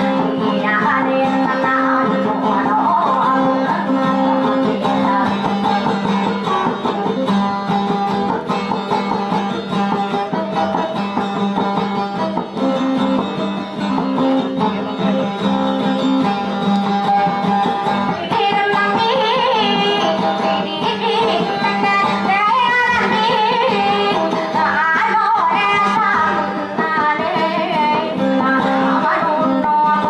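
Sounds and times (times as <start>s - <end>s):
plucked guitar music: 0.0s - 30.0s.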